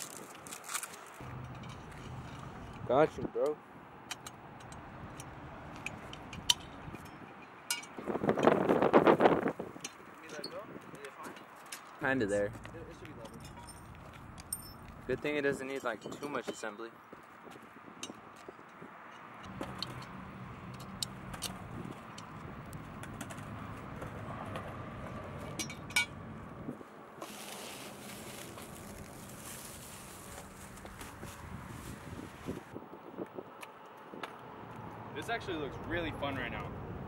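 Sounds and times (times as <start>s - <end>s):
plastic wrapping rustling: 0.0s - 1.2s, 27.2s - 32.6s.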